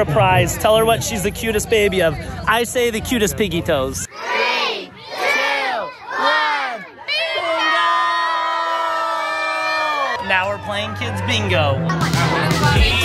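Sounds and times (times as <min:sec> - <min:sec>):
children shouting in unison: 0:04.1 - 0:10.2.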